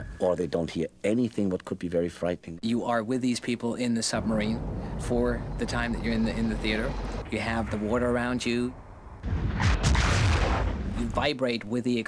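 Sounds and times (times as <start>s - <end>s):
explosion boom and rumble: 4.2s - 11.2s.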